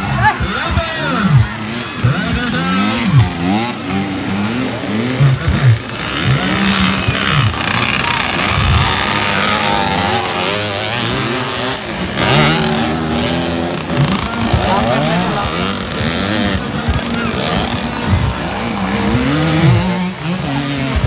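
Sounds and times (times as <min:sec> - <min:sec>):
dirt bikes revving and riding past: 0:00.0 - 0:21.0.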